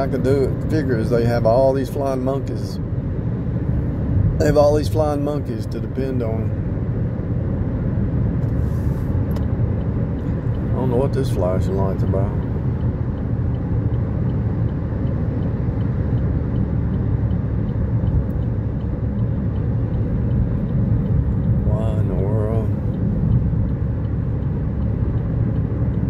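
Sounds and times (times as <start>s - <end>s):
car road and engine noise: 0.0s - 26.0s
faint regular ticking: 9.2s - 26.0s.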